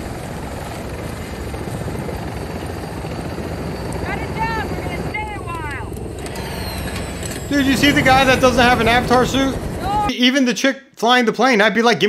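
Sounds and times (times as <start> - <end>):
helicopter rotors and engine: 0.0 - 10.1.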